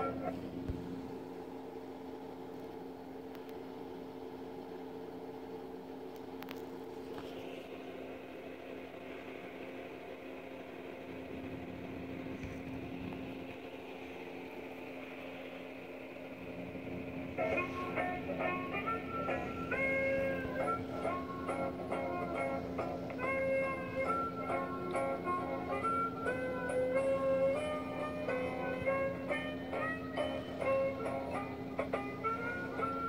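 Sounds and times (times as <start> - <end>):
high steady whine: 0.0 - 33.0
mechanical hum: 0.0 - 33.0.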